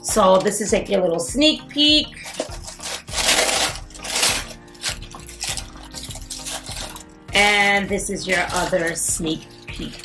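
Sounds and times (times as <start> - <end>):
quiet background music: 0.0 - 10.0
paper crinkling: 2.1 - 7.2, 8.2 - 10.0.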